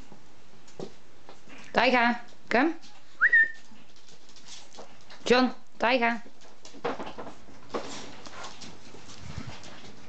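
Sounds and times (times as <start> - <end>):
person whistling: 3.2 - 3.6.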